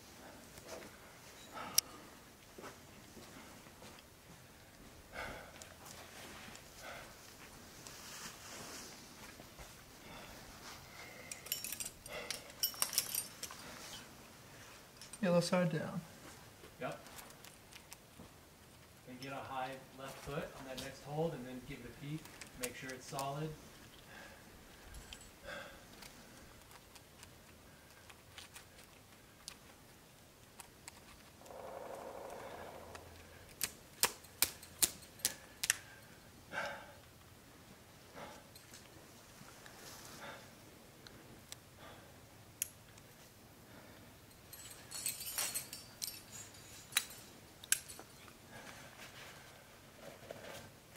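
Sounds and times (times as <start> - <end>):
climbing gear clinking: 10.1 - 14.1, 14.8 - 15.2, 24.1 - 29.6, 30.6 - 36.2, 38.2 - 39.0, 44.2 - 49.3.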